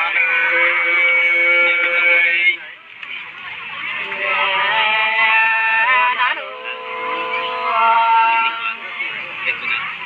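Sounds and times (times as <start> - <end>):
women singing unaccompanied: 4.0 - 8.9.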